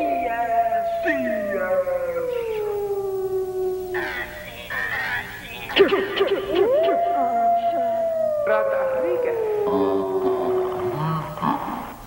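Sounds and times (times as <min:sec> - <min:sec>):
choppy voice fragments: 0:00.0 - 0:03.0, 0:03.9 - 0:12.0
wailing howl-like tone: 0:00.0 - 0:04.3, 0:06.4 - 0:11.4.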